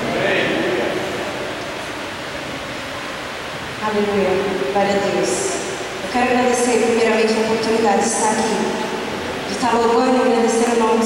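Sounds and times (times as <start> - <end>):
steady room hiss: 0.0 - 11.0.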